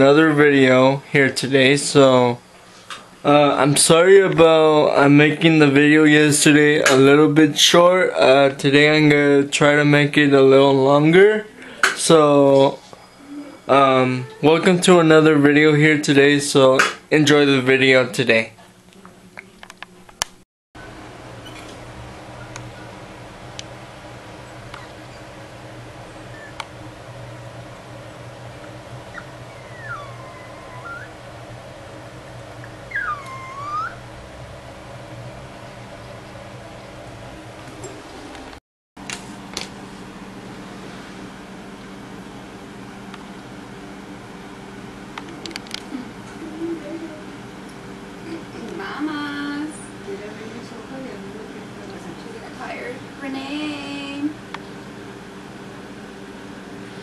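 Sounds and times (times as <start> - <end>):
steady low hum: 0.0 - 57.0
dog whining: 12.8 - 14.5, 24.5 - 25.5, 26.1 - 26.6, 29.0 - 31.3, 32.6 - 34.1.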